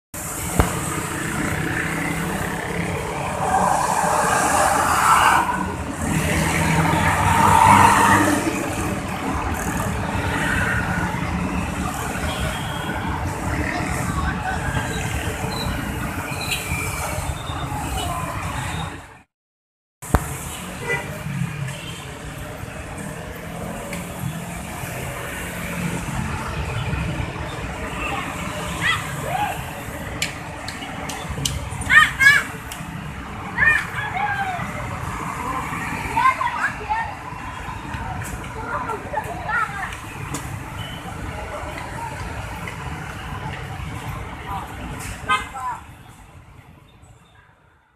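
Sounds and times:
heavy road traffic rumble: 0:00.1 - 0:19.3, 0:20.0 - 0:47.9
scooters and motorcycles passing: 0:00.2 - 0:18.9, 0:20.3 - 0:45.4.

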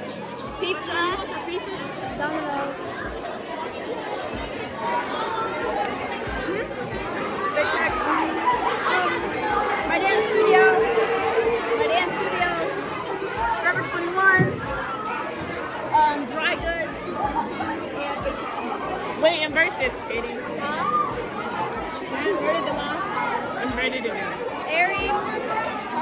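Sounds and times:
crowd chatter in large hall: 0:00.0 - 0:26.0.

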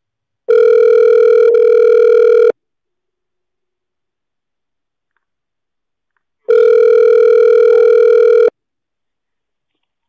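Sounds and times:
telephone ringback tone: 0:00.5 - 0:02.6, 0:06.5 - 0:08.5.

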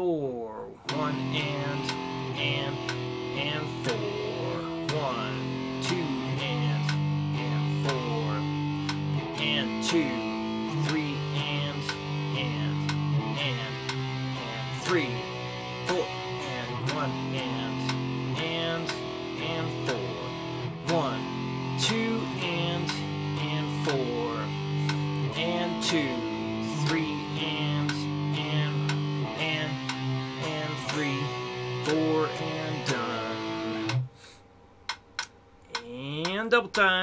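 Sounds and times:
electric guitar power chords: 0:00.8 - 0:36.5.

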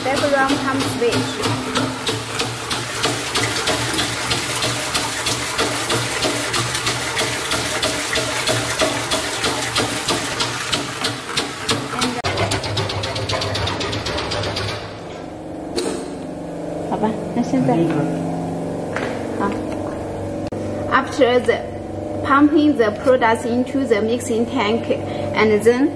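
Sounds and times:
liquid pouring into metal tank: 0:00.0 - 0:14.6
diaphragm pump pulsing: 0:00.0 - 0:17.6
steady low hum: 0:12.0 - 0:25.9.

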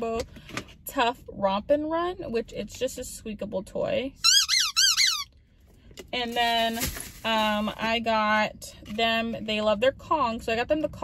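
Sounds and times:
squeaky dog toy: 0:04.2 - 0:05.3.

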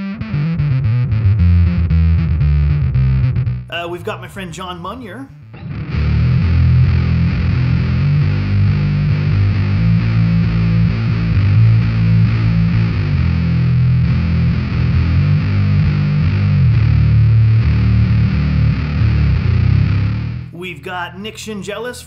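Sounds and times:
fuzzed electric bass notes: 0:00.0 - 0:21.0.

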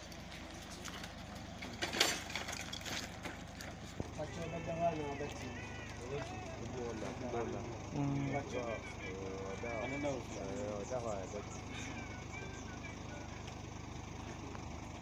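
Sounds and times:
steady low hum: 0:00.0 - 0:15.0
people calling out: 0:04.2 - 0:10.6, 0:11.2 - 0:13.7.

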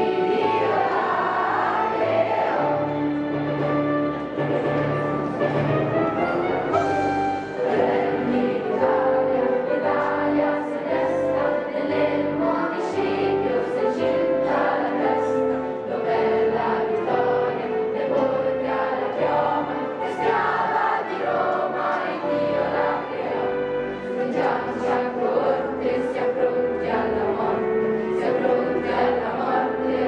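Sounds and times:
choir singing long notes: 0:00.0 - 0:30.0.

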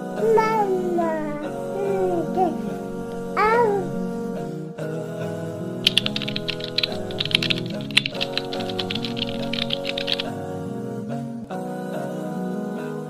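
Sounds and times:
background music: 0:00.0 - 0:13.0
computer keyboard typing: 0:05.8 - 0:10.3.

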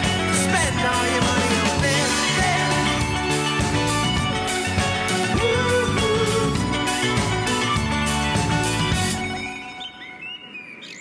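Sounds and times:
guitar music: 0:00.0 - 0:10.0
small birds chirping: 0:07.6 - 0:11.0.

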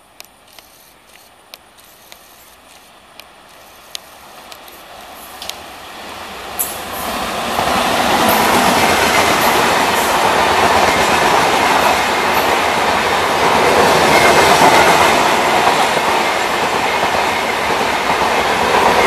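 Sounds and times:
train passing at speed: 0:00.5 - 0:19.0.

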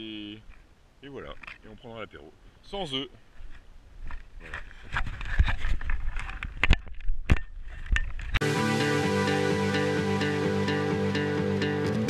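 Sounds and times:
music: 0:08.4 - 0:12.0.

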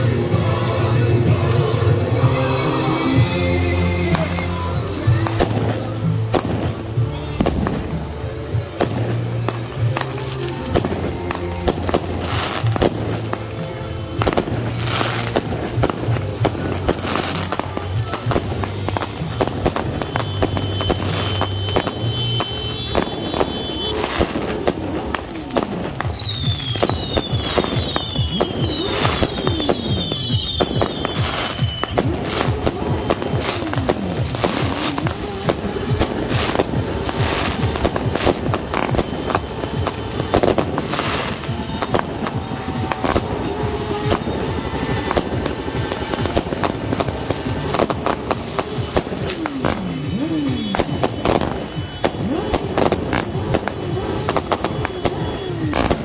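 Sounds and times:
firecrackers banging: 0:00.0 - 0:56.0
whistling fireworks: 0:00.0 - 0:56.0.

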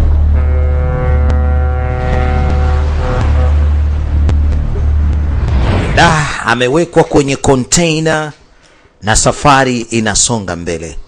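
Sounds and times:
ship's horn blast: 0:00.0 - 0:05.4
deep steady rumble: 0:00.0 - 0:06.7.

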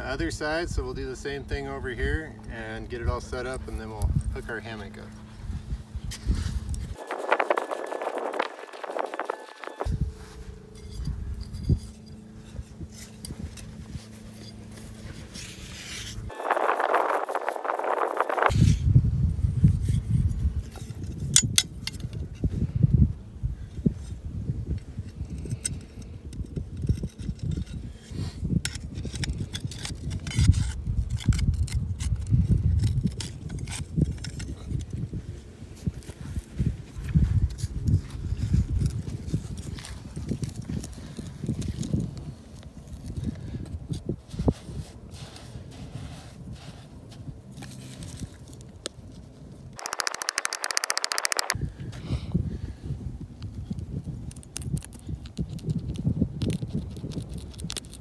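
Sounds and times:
spade digging sand: 0:06.1 - 0:18.8.

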